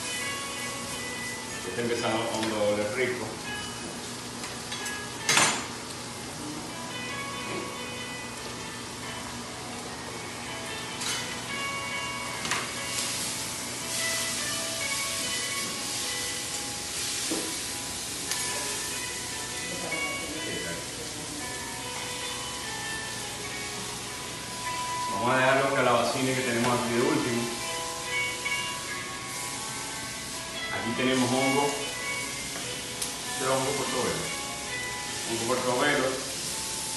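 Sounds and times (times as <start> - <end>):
food sizzling in a wok: 0.0 - 36.9
quiet background music: 0.0 - 36.9.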